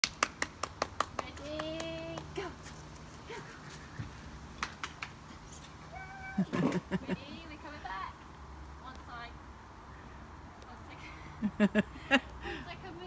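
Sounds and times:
sharp hand claps: 0.0 - 2.4, 4.6 - 5.2
person calling: 5.9 - 7.0.

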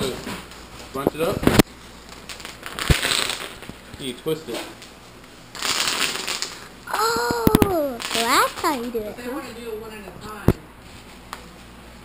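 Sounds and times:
bubble wrap crinkling: 2.0 - 3.8, 5.5 - 6.7, 7.4 - 8.9.

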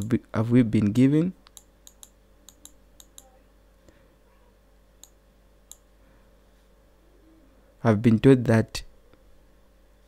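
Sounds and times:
low electrical hum: 0.0 - 10.0
computer mouse clicks: 0.8 - 3.3, 5.0 - 5.9.

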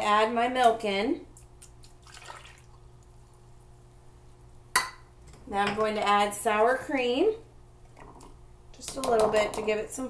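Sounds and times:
faint steady hum: 0.0 - 10.0
liquid splash: 1.9 - 2.8.

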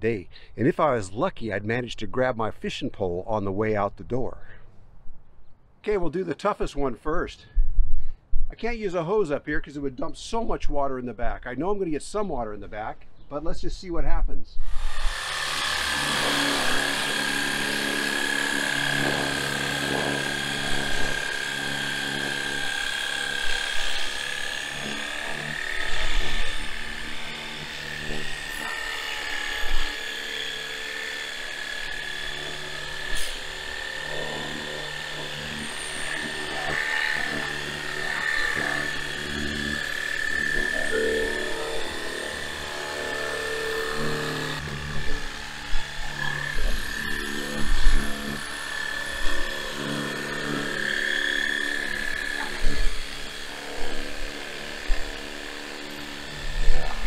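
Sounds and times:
pressure washer pump whine: 14.6 - 57.0.

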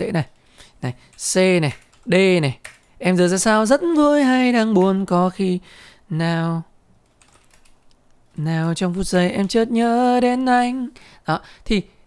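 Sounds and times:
computer keyboard typing: 1.0 - 5.1, 7.0 - 9.8.

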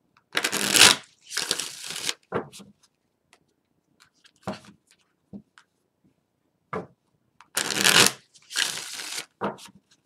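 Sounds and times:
cards being shuffled: 7.6 - 10.0.

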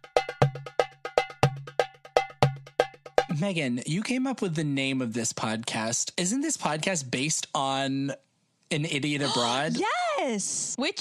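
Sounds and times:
pitched percussion clacks: 0.0 - 3.5.

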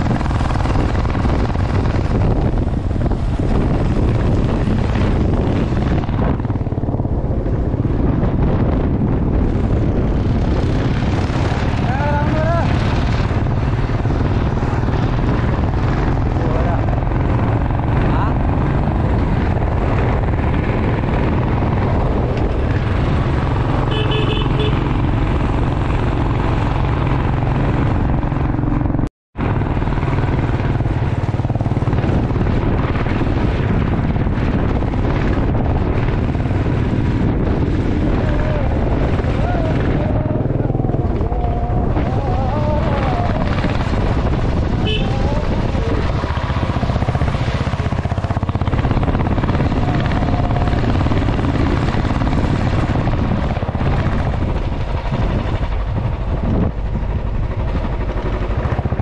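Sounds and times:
motorcycle running: 0.0 - 59.0
wind rush on microphone: 0.0 - 59.0.

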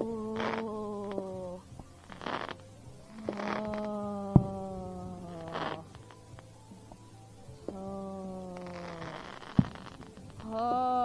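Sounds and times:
hiss of sparks: 0.0 - 7.1, 7.7 - 10.8
faint crackling pops: 0.0 - 11.0
ground firework buzzing: 0.0 - 11.0.

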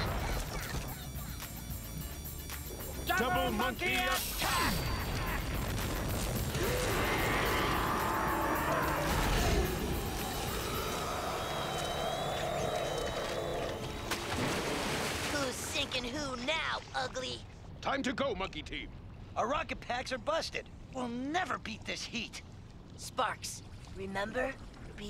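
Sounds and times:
background music: 0.0 - 14.8
rumbling and crashing: 4.7 - 11.6.

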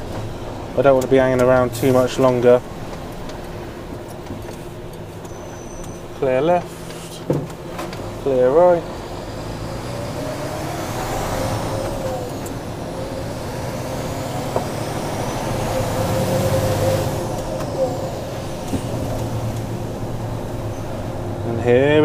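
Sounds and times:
diesel truck engine from cab: 0.0 - 22.0.

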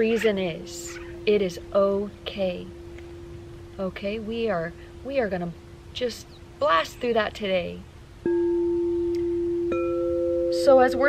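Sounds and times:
singing bowls ringing: 0.0 - 6.2, 8.2 - 11.0.

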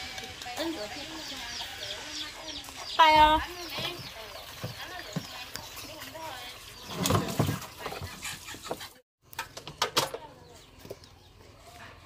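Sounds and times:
chickens clucking: 0.0 - 9.5.

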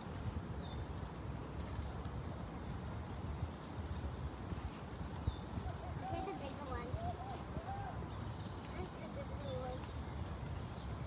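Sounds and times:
faint distant voices: 5.6 - 10.0.

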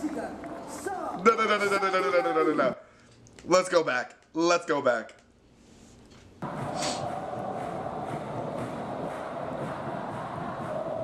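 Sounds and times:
stadium crowd chanting and cheering: 6.4 - 11.0.

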